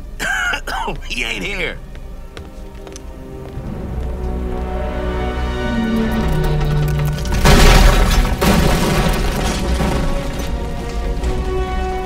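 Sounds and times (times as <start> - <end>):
dramatic orchestral music: 1.0 - 12.0.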